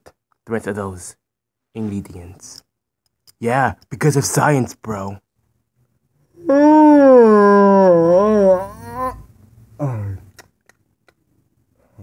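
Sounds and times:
person holding a mock howl: 6.4 - 9.3.

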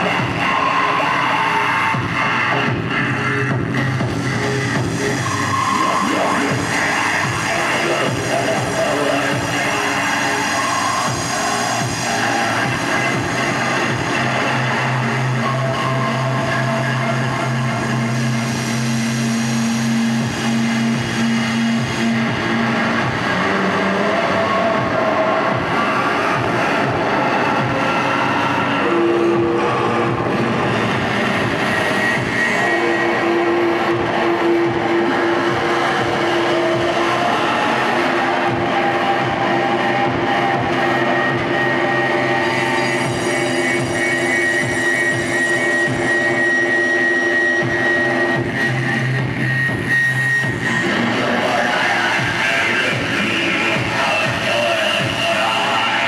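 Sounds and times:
distorted electronic noise: 0.0 - 56.0
droning tones: 0.0 - 56.0.

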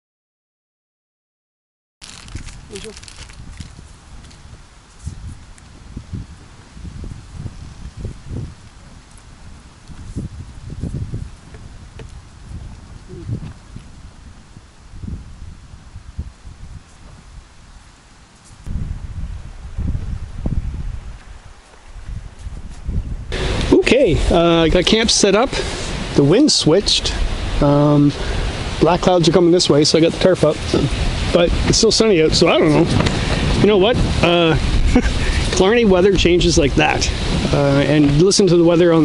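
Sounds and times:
leaves rustling: 2.0 - 39.0
wind rumbling on microphone: 2.0 - 39.0.

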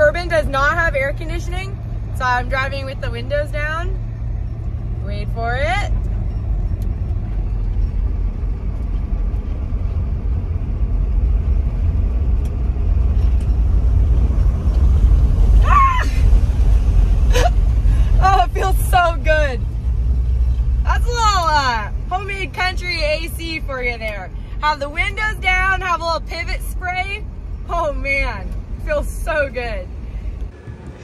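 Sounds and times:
road rumble: 0.0 - 31.0
wind buffeting through car windows: 0.0 - 31.0.

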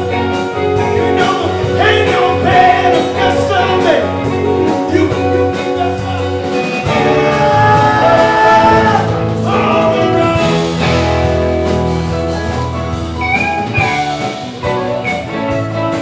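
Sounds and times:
live rock band playing: 0.0 - 16.0
sliding lead guitar line: 0.0 - 16.0.

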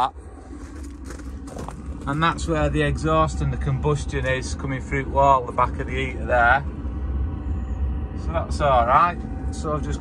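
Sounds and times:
low steady rumble: 0.0 - 10.0
footsteps walking outdoors: 0.2 - 2.7.

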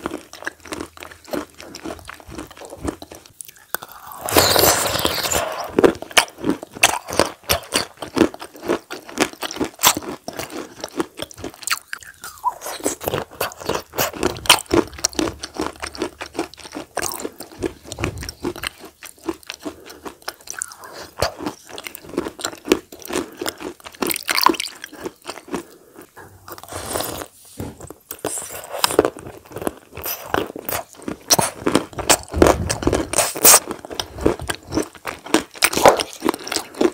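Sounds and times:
person eating with crunching: 0.0 - 36.9.

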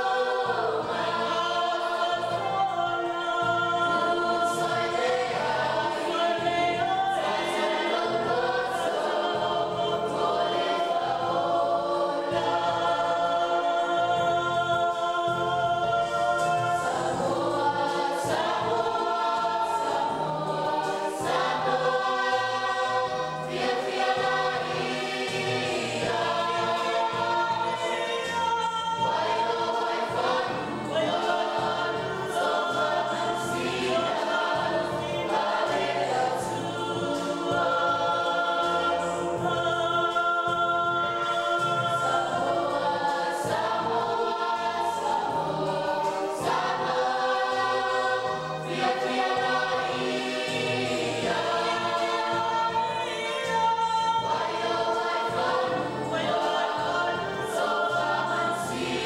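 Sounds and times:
choir singing gospel: 0.0 - 59.0.

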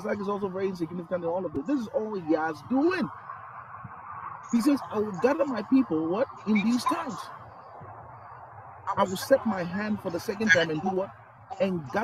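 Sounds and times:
man speaking: 0.0 - 3.1, 4.5 - 7.3, 8.9 - 12.0.

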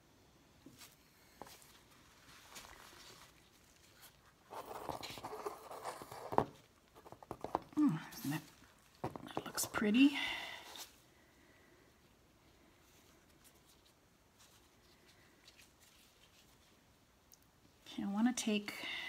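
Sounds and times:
canvas rustling in gloved hands: 0.6 - 5.2, 12.8 - 17.1.

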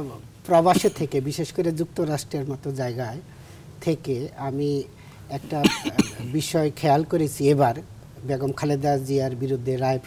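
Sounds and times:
man speaking: 0.0 - 10.0
man clearing throat: 0.7 - 1.0, 5.6 - 6.3.

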